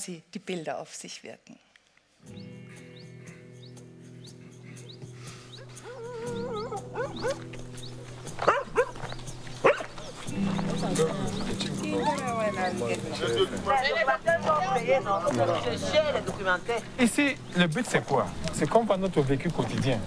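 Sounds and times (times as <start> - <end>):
sustained low music chord: 2.3 - 8.4, 9.0 - 18.4.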